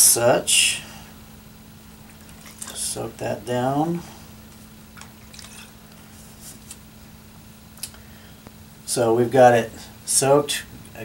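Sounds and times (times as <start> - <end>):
wet cloth rustling: 2.0 - 3.0, 4.4 - 6.8.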